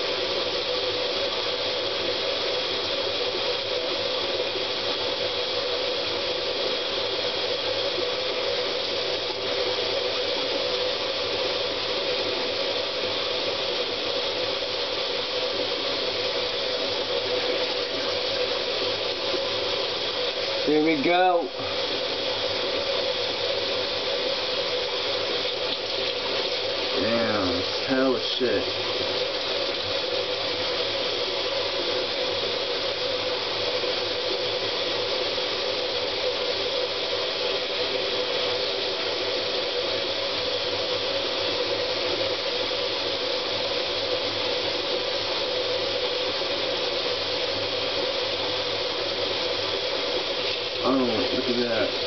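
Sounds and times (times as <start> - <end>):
faint steady hum: 0.0 - 52.0
tap water running into sink: 15.6 - 30.8.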